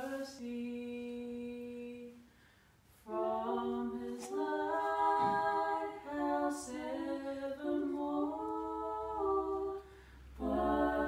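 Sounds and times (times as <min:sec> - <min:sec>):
unaccompanied hymn singing: 0:00.0 - 0:02.3, 0:03.0 - 0:11.0.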